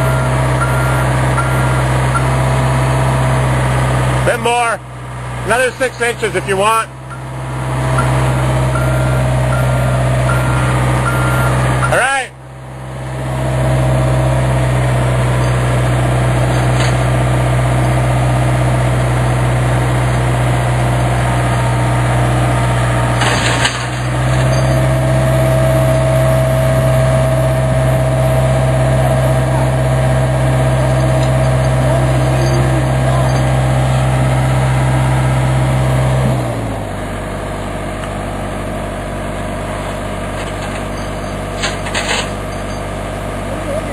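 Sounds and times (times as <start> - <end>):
excavator diesel engine running: 0.0 - 43.9.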